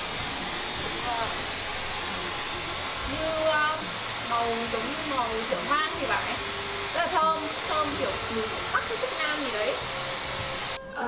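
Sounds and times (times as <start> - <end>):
water boiling with rushing hiss: 0.0 - 10.8.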